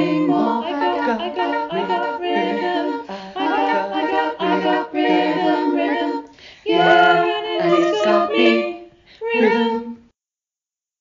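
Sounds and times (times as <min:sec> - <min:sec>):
women singing a cappella harmony: 0:00.0 - 0:10.1.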